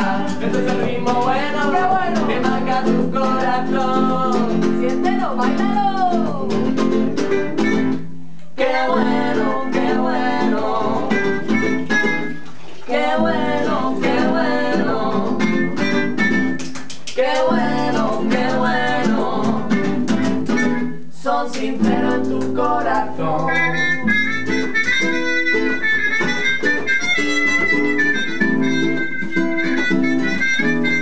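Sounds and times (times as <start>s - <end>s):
classical guitar strumming: 0.0s - 31.0s
trumpet melody: 23.4s - 31.0s.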